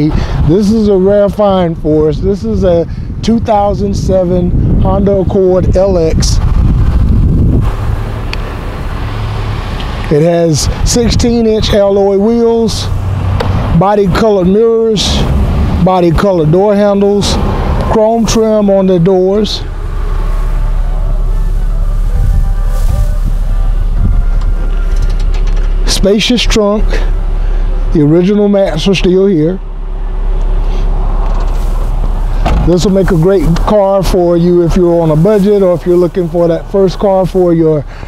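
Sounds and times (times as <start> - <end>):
wind buffeting microphone: 0.0 - 26.3, 29.6 - 37.7
outdoor background rumble: 0.0 - 38.0
low hum: 18.7 - 35.1.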